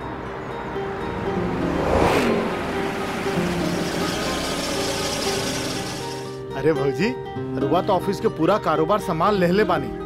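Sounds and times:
road noise: 0.0s - 6.4s
background music: 0.0s - 10.0s
car driving off: 0.1s - 6.4s.

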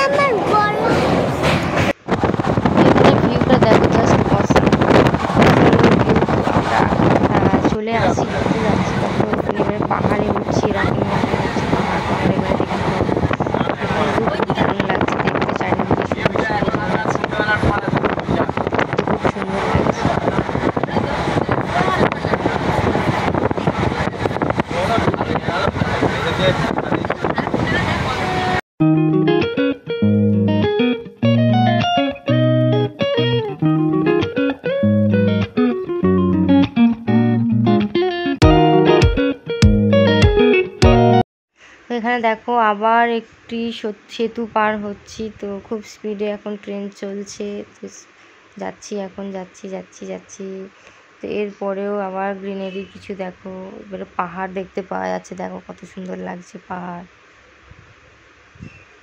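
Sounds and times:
voices: 0.0s - 1.7s, 2.7s - 28.6s, 41.9s - 57.1s
train rumble and rush: 0.0s - 28.6s
plucked guitar-like melody: 28.8s - 41.2s.

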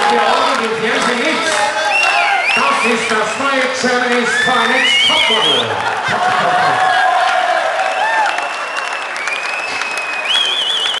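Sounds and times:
crowd applauding: 0.0s - 11.0s
man whistling shrilly: 1.8s - 3.2s, 4.4s - 5.7s, 8.1s - 11.0s.

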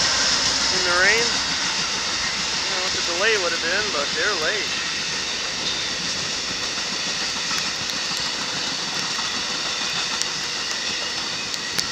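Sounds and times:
train wheels rushing on track: 0.0s - 11.9s
faint clicks: 6.5s - 11.9s.

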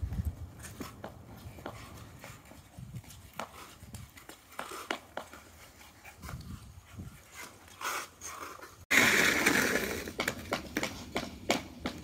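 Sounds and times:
ice skates scraping on ice: 0.2s - 12.0s.

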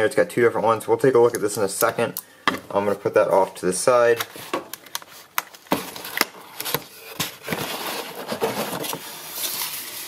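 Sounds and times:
cardboard scraping rustle: 5.9s - 10.0s.

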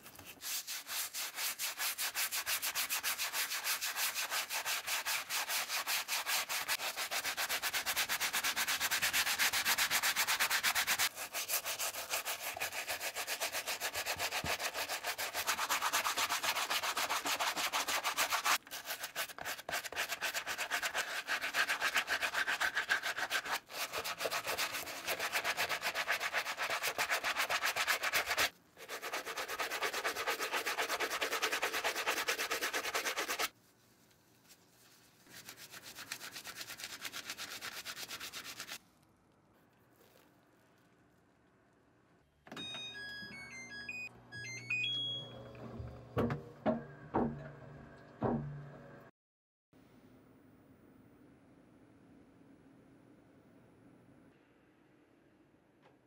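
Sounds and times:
brush scrubbing a shoe: 0.0s - 38.8s.

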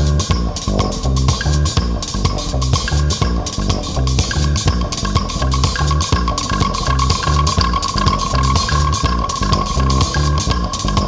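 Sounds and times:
bass guitar line: 0.0s - 11.0s
drums: 0.0s - 11.0s
wooden percussion struck with stick: 0.3s - 11.0s
steady high tone: 4.6s - 11.0s.

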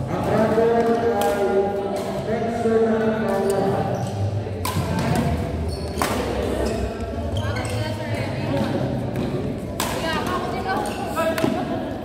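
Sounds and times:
background chatter: 0.0s - 12.0s
rackets hitting shuttlecock: 0.3s - 2.2s, 4.6s - 6.6s, 8.6s - 11.7s.

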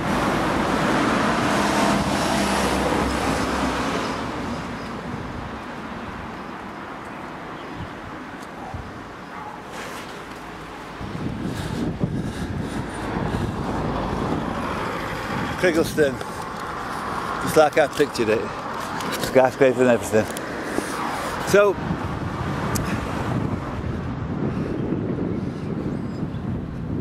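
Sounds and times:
car passing by: 0.0s - 5.1s, 12.5s - 23.8s
road traffic noise: 0.0s - 27.0s.

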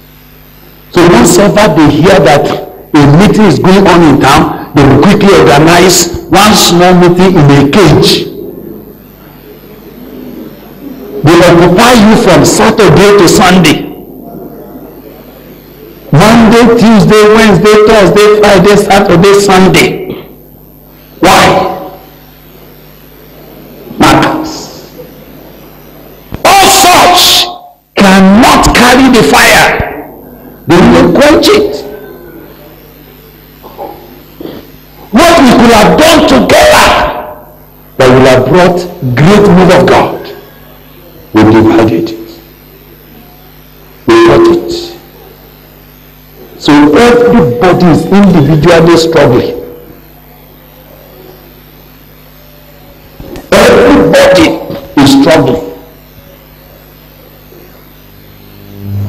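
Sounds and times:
faint low hum: 0.0s - 59.0s.

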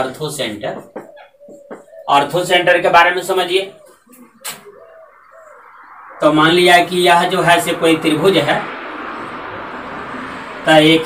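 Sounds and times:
pigeon cooing softly: 0.8s - 7.3s.

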